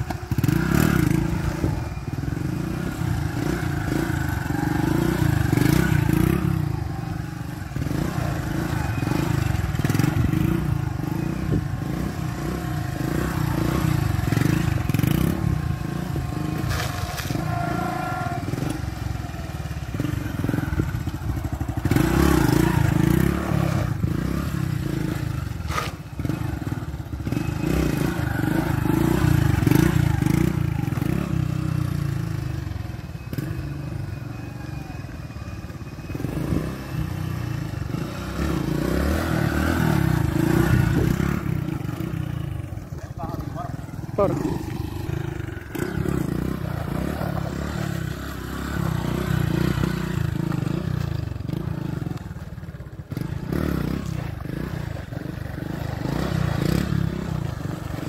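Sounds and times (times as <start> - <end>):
small motorcycle engine revving: 0.0 - 58.0.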